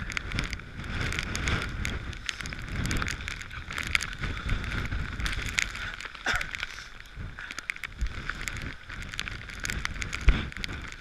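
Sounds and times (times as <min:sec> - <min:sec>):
rain ticking on camera: 0:00.0 - 0:11.0
wind buffeting microphone: 0:00.0 - 0:11.0.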